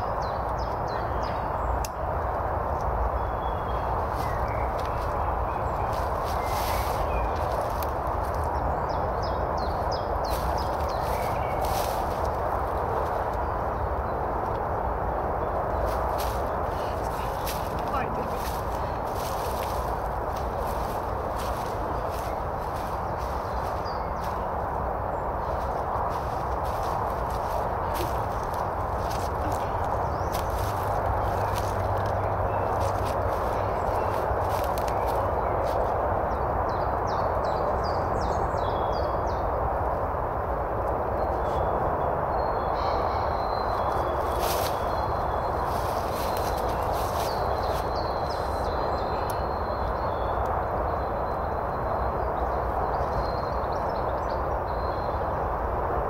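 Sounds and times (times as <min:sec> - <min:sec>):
steady rushing background noise: 0:00.0 - 0:56.0
footsteps crunching through dry leaves: 0:03.7 - 0:09.1, 0:09.7 - 0:13.6, 0:15.7 - 0:36.0, 0:42.8 - 0:49.5.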